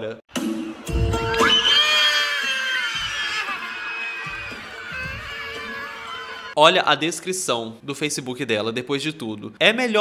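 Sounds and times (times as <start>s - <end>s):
background music: 0.3s - 6.6s
person screaming: 1.4s - 6.6s.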